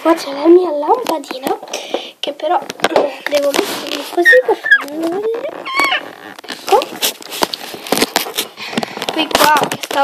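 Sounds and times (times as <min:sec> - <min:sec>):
handling clicks knocks and rustles: 0:06.3 - 0:10.0.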